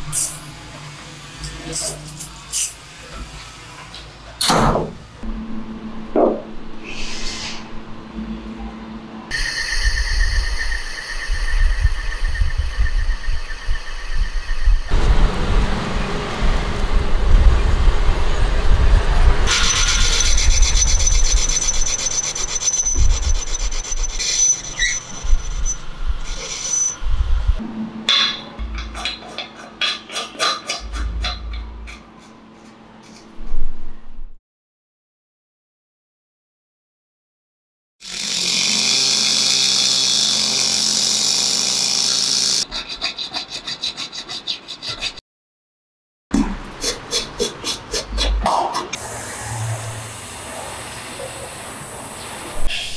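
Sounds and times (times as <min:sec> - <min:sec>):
loud knock: 0:04.4 - 0:05.0
lathe machine whine: 0:09.2 - 0:17.2
tool bit cutting metal: 0:19.5 - 0:27.0, 0:38.0 - 0:45.1.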